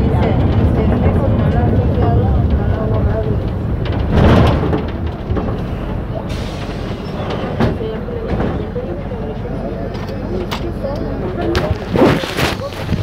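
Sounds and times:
bus engine and road rumble: 0.0s - 13.0s
passengers' voices: 0.0s - 13.0s.

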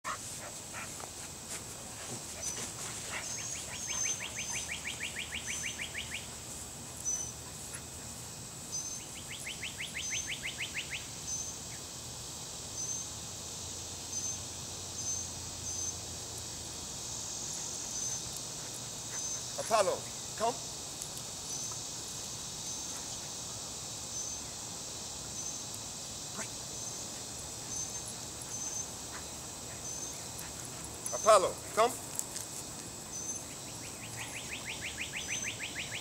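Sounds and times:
high insect drone: 0.1s - 36.0s.

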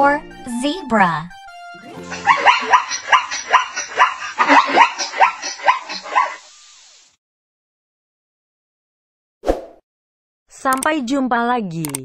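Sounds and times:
zebra yelping barks: 2.1s - 6.4s.

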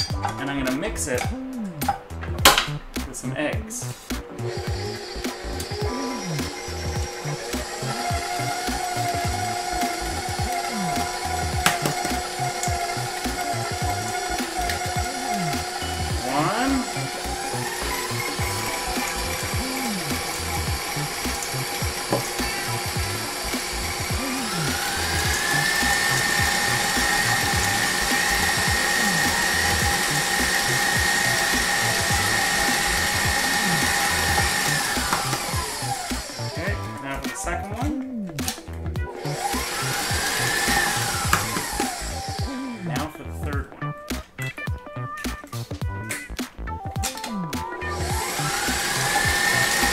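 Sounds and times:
stand mixer motor whining: 4.2s - 37.1s, 39.0s - 42.8s, 47.7s - 49.9s.

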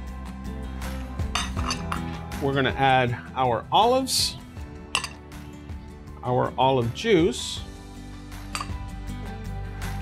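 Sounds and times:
soft background music: 0.0s - 10.0s
glass bowl clinking: 1.3s - 2.1s, 5.0s - 5.2s, 8.5s - 8.8s.

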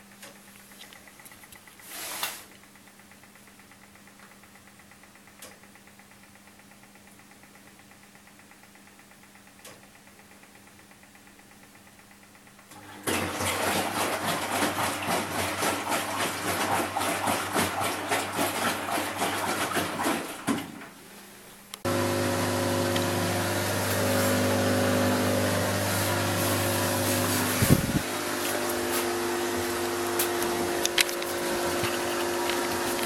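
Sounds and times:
washing machine humming: 0.0s - 33.0s.

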